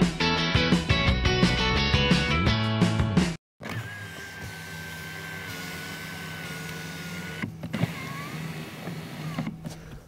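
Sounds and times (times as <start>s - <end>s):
electric motor whining: 3.6s - 9.8s.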